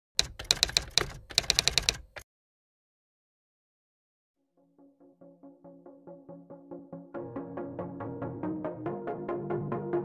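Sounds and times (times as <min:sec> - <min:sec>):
typewriter key clicks: 0:00.2 - 0:02.2.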